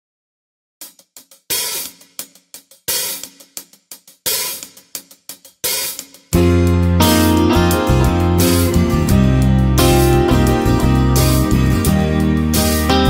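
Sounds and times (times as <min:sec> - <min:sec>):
open hi-hat washes: 0:00.8 - 0:13.0.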